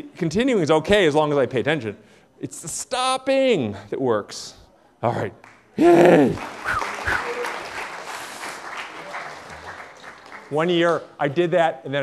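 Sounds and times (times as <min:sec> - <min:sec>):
audience applauding: 0:05.4 - 0:11.0.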